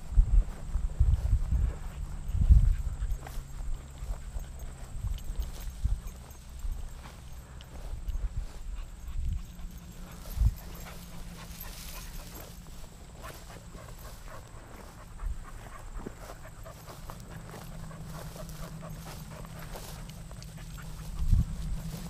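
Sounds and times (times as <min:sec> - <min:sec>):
footsteps in dry grass: 0:00.0 - 0:22.0
grass brushing: 0:00.0 - 0:22.0.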